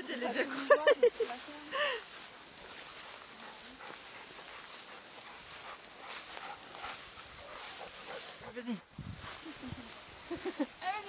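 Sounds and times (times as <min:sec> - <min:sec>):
rustling in grass: 0:00.0 - 0:11.0.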